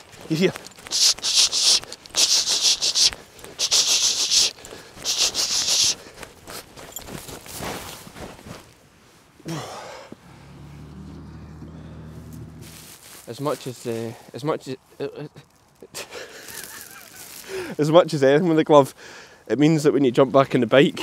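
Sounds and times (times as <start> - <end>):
person breathing heavily: 0.8 - 6.7, 9.4 - 10.6, 11.4 - 12.3, 17.4 - 17.8, 18.9 - 19.5
vehicle engine idling: 10.2 - 13.0.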